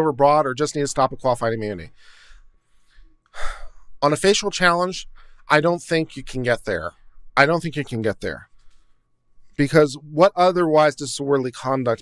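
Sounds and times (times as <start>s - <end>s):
man breathing into microphone: 2.0s - 4.0s, 5.1s - 5.5s.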